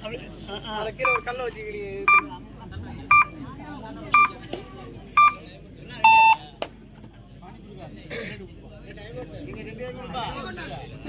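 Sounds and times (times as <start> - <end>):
murmur of crowd voices: 0.0 - 11.0
short electronic beeps: 3.1 - 3.4, 4.2 - 4.4, 5.2 - 5.4, 6.0 - 6.4
longer lower beep: 6.0 - 6.4.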